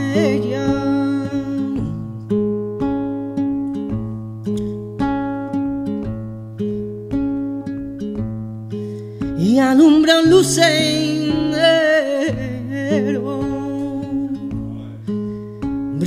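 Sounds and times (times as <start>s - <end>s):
flamenco guitar playing: 0.0s - 16.0s.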